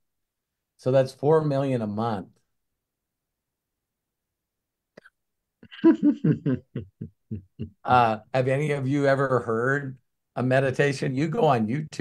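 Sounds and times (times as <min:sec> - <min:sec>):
man laughing: 0:05.6 - 0:08.2.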